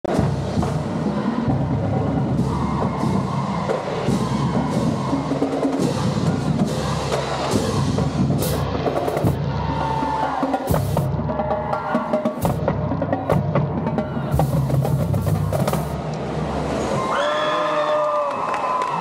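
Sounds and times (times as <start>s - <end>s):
marching drumline playing cadence: 0.1s - 16.1s.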